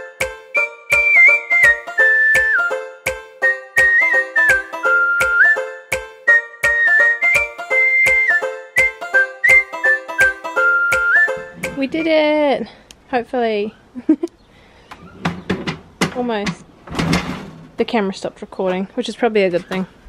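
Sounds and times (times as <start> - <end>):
whistled melody: 0.0 - 11.9
plucked-string chords: 0.0 - 12.5
steady drum beat: 10.9 - 12.2.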